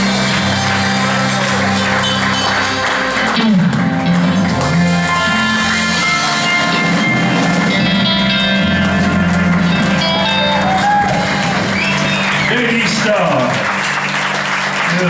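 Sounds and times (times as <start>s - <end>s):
applause: 0.0s - 4.6s, 8.8s - 15.0s
live band music: 0.0s - 15.0s.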